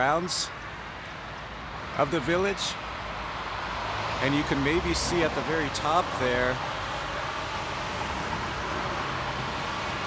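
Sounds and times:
distant road traffic hiss: 0.0s - 10.0s.

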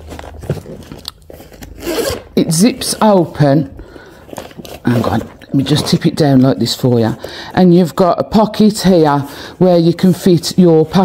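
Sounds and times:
fabric rustling: 0.0s - 11.0s
zip pulled open: 1.4s - 2.6s.

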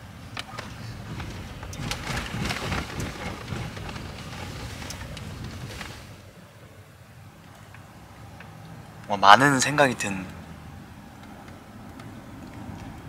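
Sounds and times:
road and tyre rumble in car: 0.0s - 13.0s.

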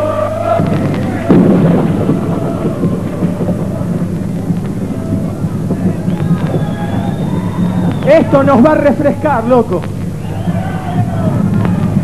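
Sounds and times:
loud thunderclap: 0.6s - 12.0s
thunder rumble: 0.6s - 12.0s
rain-like noise: 0.7s - 12.0s.

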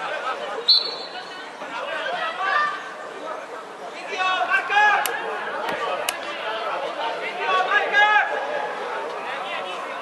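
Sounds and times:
distant people talking and calling: 0.0s - 10.0s.

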